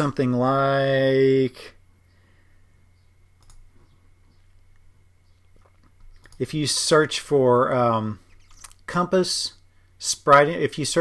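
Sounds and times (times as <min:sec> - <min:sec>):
low steady hum: 0:00.0 - 0:11.0
computer mouse click: 0:03.4 - 0:03.6.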